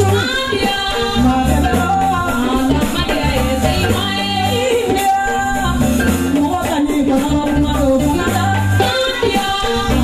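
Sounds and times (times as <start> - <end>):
live band with bass line: 0.0 - 10.0
woman singing into a microphone: 0.0 - 10.0.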